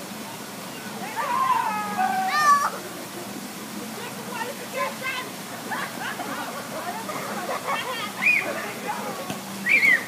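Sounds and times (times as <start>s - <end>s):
child crying and squealing: 1.2s - 2.8s.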